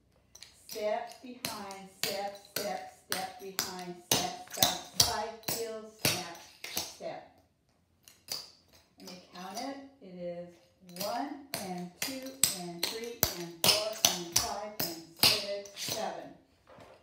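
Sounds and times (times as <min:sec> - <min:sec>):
person speaking: 0:00.6 - 0:07.3, 0:09.0 - 0:16.3.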